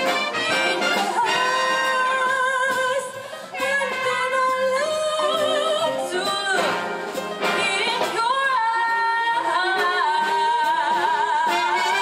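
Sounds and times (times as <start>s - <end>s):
jazz big band playing: 0.0s - 12.0s
woman singing: 0.0s - 12.0s.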